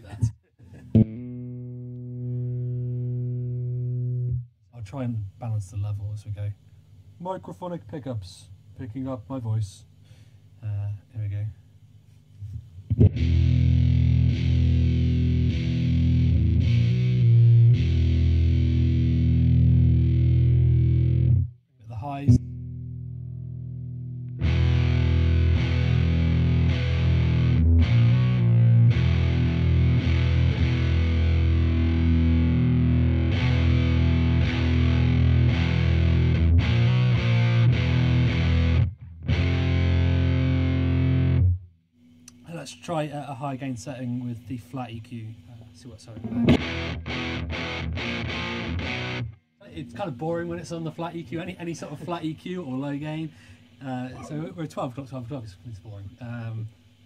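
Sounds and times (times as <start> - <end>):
distorted electric guitar riffing: 0.8 - 4.4, 12.9 - 21.5, 22.1 - 41.6, 46.2 - 49.4.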